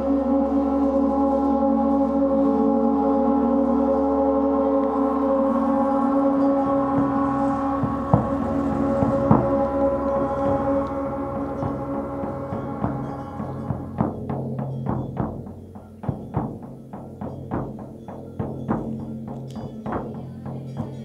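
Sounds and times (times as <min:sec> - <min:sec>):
low pulsing: 0:00.0 - 0:21.0
gong ringing: 0:03.9 - 0:15.4.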